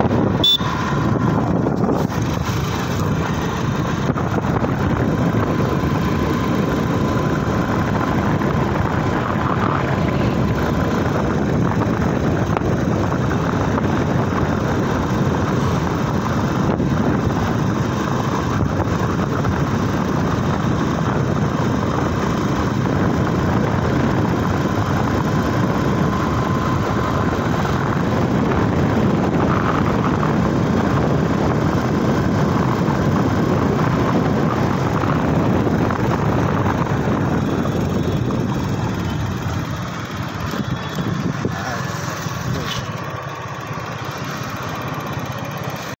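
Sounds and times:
motorbike running: 0.0 - 46.0
road and wind noise: 0.0 - 46.0.

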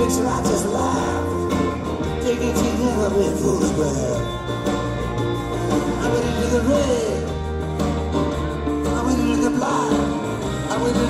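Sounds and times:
bass and drums: 0.0 - 11.0
lead guitar line bending: 0.0 - 11.0.

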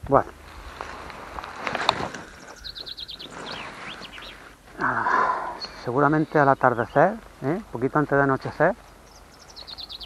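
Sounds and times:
small bird chirping: 2.2 - 4.6, 8.8 - 10.0
person speaking: 4.7 - 8.8.

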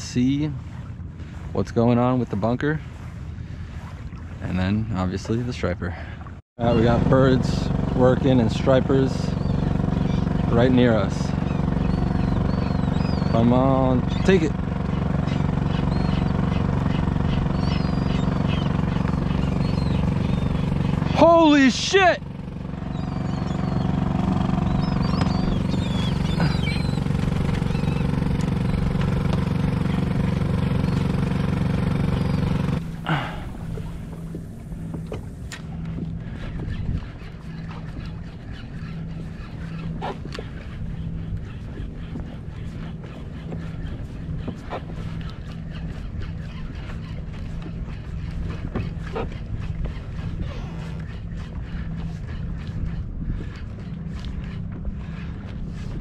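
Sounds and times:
boat engine running: 0.0 - 56.0
water lapping: 0.0 - 56.0
wind: 0.0 - 56.0
gull cries: 6.6 - 34.4.

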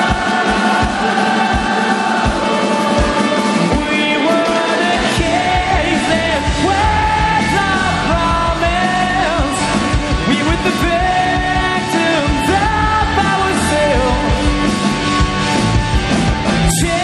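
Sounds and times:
crowd singing along: 0.0 - 14.8
live rock band: 0.0 - 17.0.

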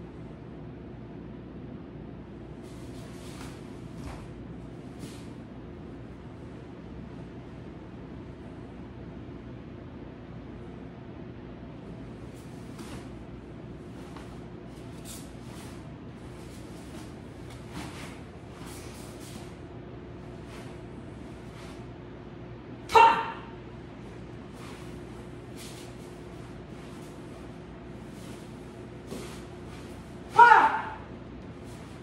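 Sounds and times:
uniform swishing: 2.6 - 5.4, 12.2 - 19.6, 20.2 - 21.9, 24.0 - 32.0
movement on mats: 2.6 - 5.7, 12.0 - 22.2, 23.9 - 32.0
woman's sharp shout: 22.9 - 23.6, 30.3 - 31.1.

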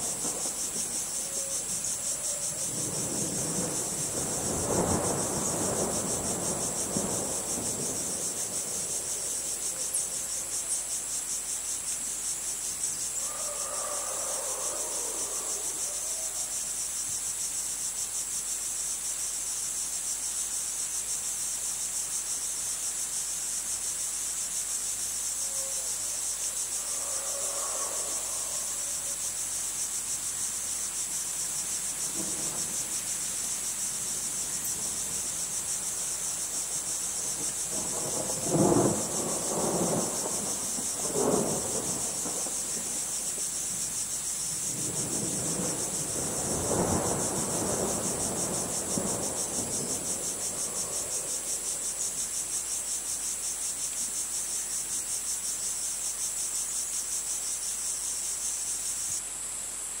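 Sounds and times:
crickets chirring: 0.0 - 60.0.

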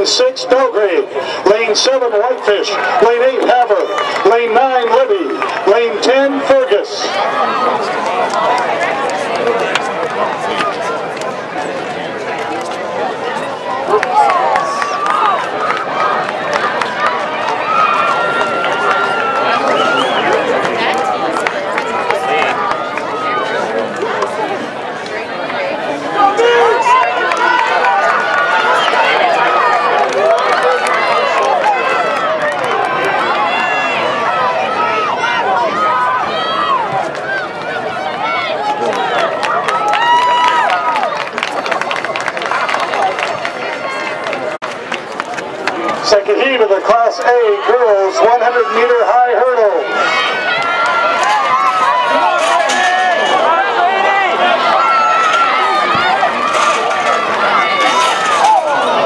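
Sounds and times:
crowd cheering and shouting: 0.0 - 59.0.

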